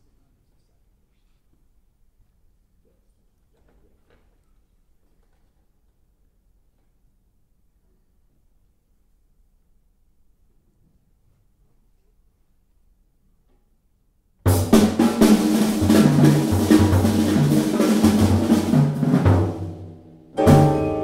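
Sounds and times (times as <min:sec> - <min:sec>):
busy drum kit playing: 0:14.5 - 0:21.0
piano: 0:14.5 - 0:21.0
vibraphone: 0:20.4 - 0:21.0.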